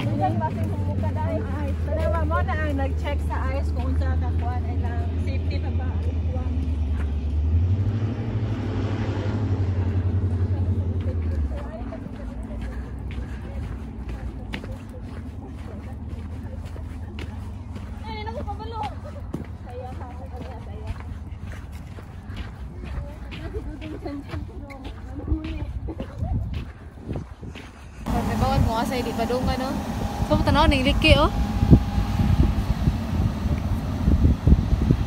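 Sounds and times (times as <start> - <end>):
footsteps on snow: 0.0 - 33.8
wind buffeting microphone: 0.0 - 35.0
faint voices: 10.1 - 27.0.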